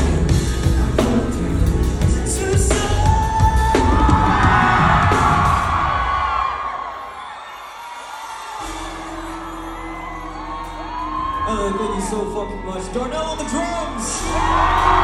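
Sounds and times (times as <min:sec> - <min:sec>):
drums: 0:00.0 - 0:07.0, 0:08.2 - 0:15.0
crowd screaming and cheering: 0:00.0 - 0:15.0.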